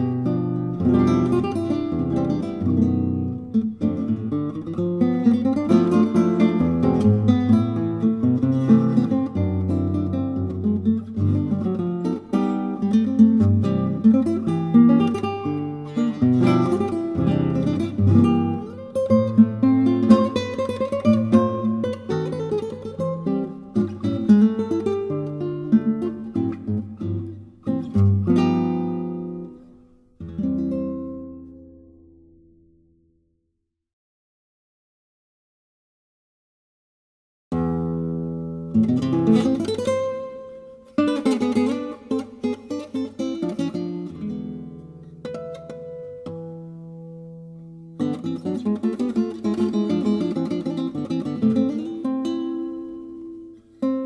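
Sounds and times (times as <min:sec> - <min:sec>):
classical guitar tango: 0:00.0 - 0:33.1, 0:37.5 - 0:54.0.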